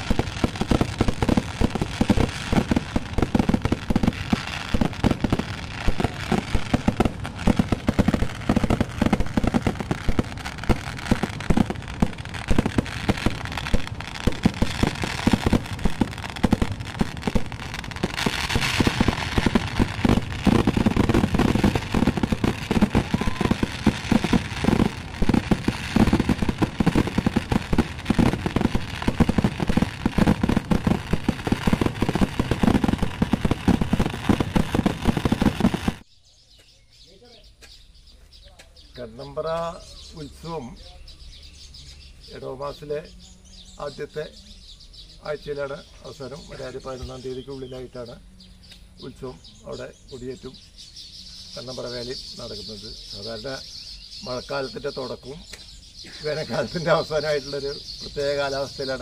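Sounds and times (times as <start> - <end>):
fireworks barrage: 0.0 - 36.0
fireworks crackling: 0.0 - 36.1, 51.3 - 59.0.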